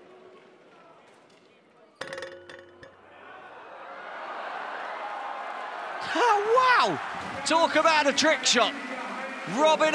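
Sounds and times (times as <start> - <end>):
arena crowd noise: 0.0 - 9.9
basketball clanking on metal rim: 2.0 - 3.0.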